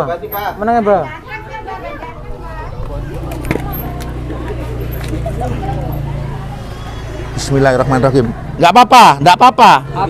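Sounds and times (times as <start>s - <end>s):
quiet background voices: 0.0s - 8.6s
vehicle engine running: 2.2s - 9.2s.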